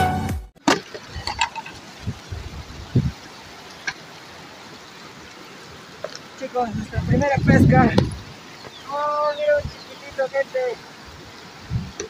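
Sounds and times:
background music: 0.0 - 0.5
fast river rushing: 0.6 - 12.0.

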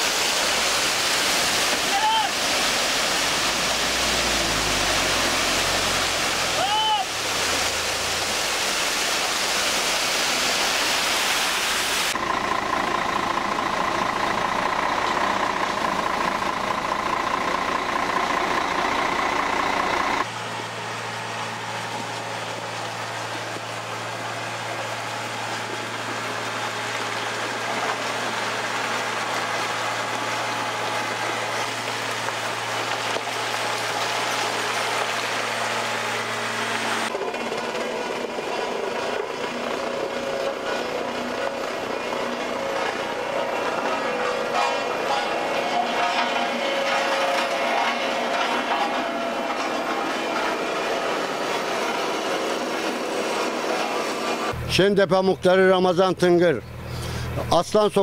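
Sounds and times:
wet concrete rushing down chute: 0.0 - 54.8
low diesel engine hum: 0.0 - 58.0
mixer truck whine: 0.0 - 58.0.

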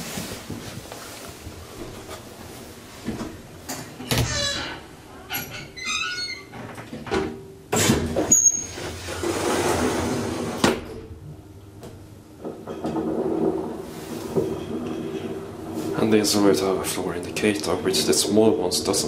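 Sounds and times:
elevator doors closing: 4.0 - 11.3, 12.4 - 19.0.

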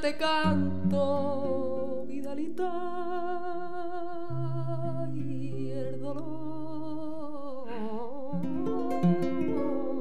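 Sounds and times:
woman singing with vibrato: 0.0 - 10.0.

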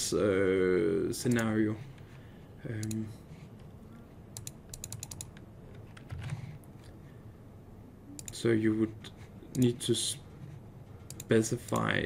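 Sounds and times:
mouse clicks: 4.4 - 6.1, 8.2 - 8.4
computer keyboard clicks: 4.4 - 6.4, 8.2 - 8.4.

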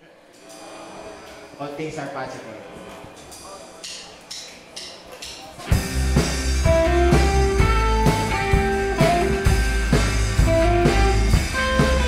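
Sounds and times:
full rock band playing: 5.6 - 12.0.

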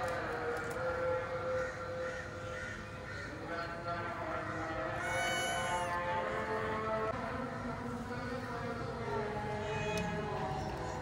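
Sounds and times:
kitten meowing: 5.0 - 6.0.

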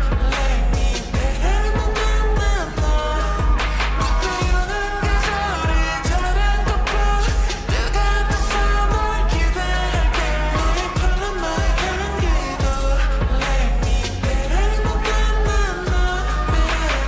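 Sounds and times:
steady beat with deep bass: 0.0 - 17.0
women singing: 0.0 - 17.0.

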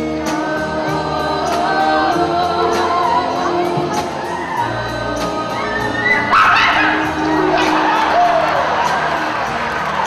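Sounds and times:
backing vocals: 0.0 - 10.0
live band music: 0.0 - 10.0.

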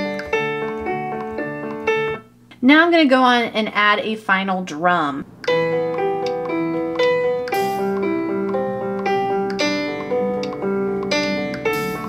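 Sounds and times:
electronic keyboard chords: 0.0 - 2.3, 5.3 - 12.0.

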